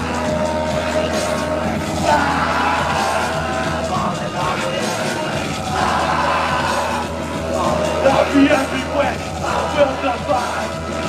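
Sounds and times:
loud live music with heavy bass: 0.0 - 11.0.

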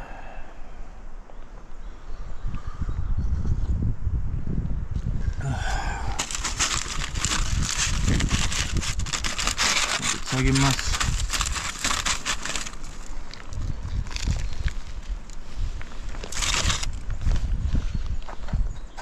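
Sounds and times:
aluminium foil crinkling: 6.0 - 15.4, 16.0 - 17.1.

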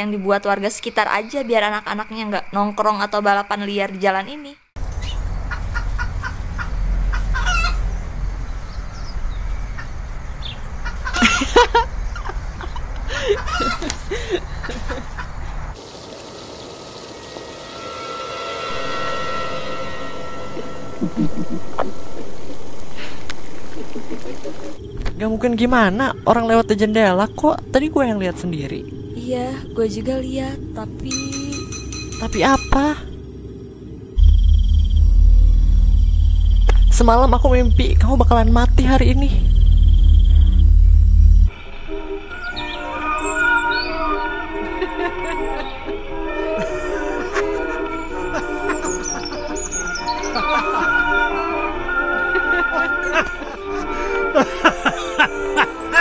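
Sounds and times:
crickets chirring: 0.0 - 14.7, 15.5 - 41.6
deep drone: 4.8 - 10.8, 16.2 - 42.1
low background rumble: 17.6 - 41.5.

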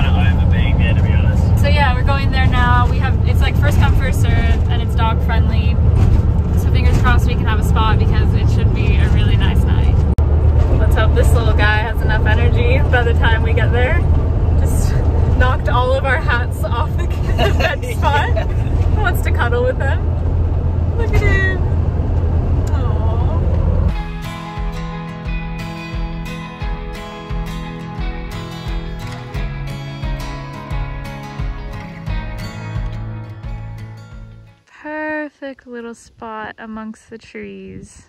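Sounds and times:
van engine and road drone: 0.0 - 37.7
woman talking: 1.6 - 5.8, 6.6 - 10.0, 10.7 - 14.0, 14.6 - 20.0, 21.0 - 21.7, 22.7 - 23.5, 34.7 - 38.0.

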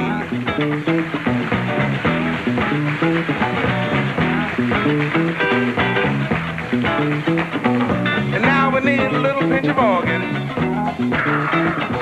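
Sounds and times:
bass line: 0.0 - 12.0
drums: 0.0 - 12.0
electric guitar funk riff: 0.0 - 12.0.

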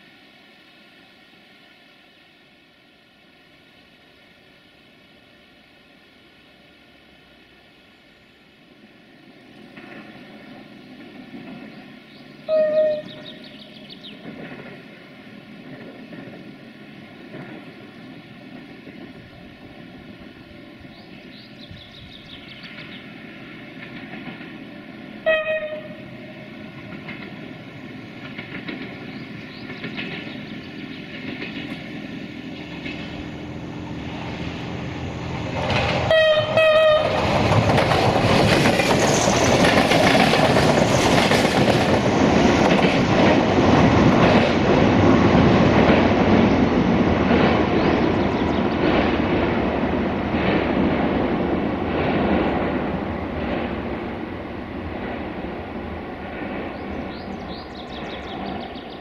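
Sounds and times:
train engine: 0.0 - 59.0
train horn blasts: 12.5 - 13.4, 25.2 - 26.1, 36.1 - 37.2.

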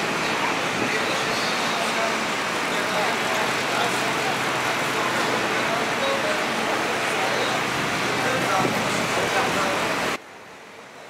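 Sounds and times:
people's voices: 0.0 - 10.2
traffic noise: 0.0 - 11.0.

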